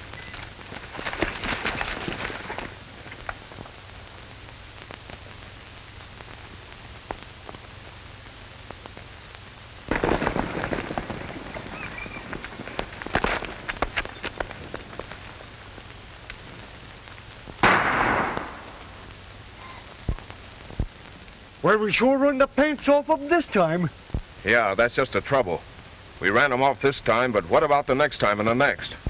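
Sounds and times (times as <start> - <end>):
film soundtrack hiss: 0.0 - 29.0
gunshots: 9.9 - 12.2, 17.6 - 19.0.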